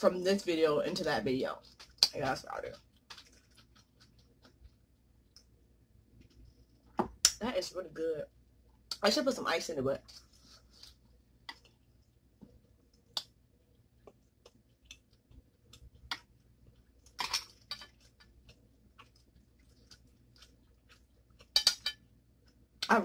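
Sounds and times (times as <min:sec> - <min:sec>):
chewing and mouth clicks: 0:02.8 - 0:05.6, 0:12.8 - 0:22.9.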